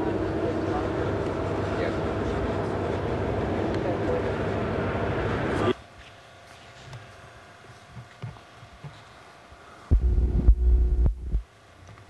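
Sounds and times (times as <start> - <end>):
loud low rumble: 9.9 - 11.4.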